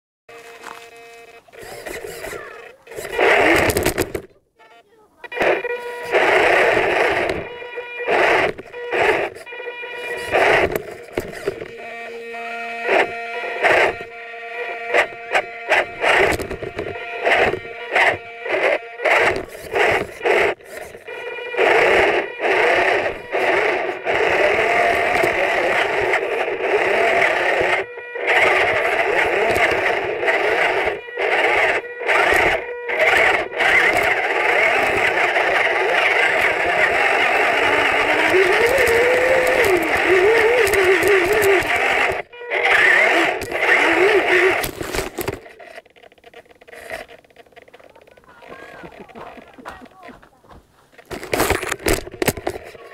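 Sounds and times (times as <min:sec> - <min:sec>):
small electric motor whining: 0:00.3 - 0:04.3, 0:05.2 - 0:49.5.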